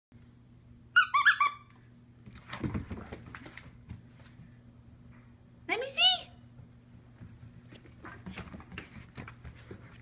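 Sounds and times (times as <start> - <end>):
squeaky dog toy squeaking: 1.0 - 1.7
puppy claws pattering on wood floor: 2.2 - 4.5, 6.5 - 10.0.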